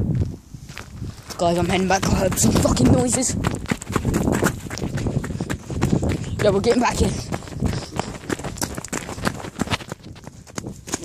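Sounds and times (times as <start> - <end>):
hurried footsteps: 0.2 - 11.0.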